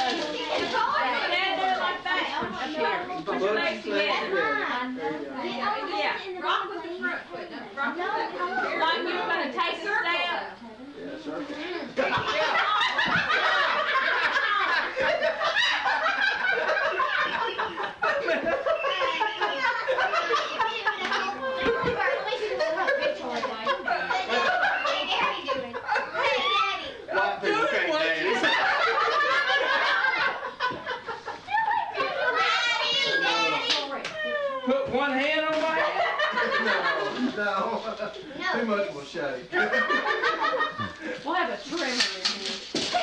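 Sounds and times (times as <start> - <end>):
people talking: 0.0 - 43.0
people laughing and snickering: 11.5 - 33.6, 35.6 - 38.4, 39.4 - 41.4.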